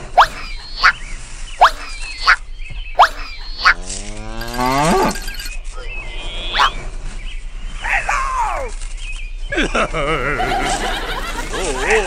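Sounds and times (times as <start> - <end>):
drawn-out rising pitched call: 0.0 - 1.0, 1.6 - 6.8
rising squeaky chirps: 0.0 - 6.8.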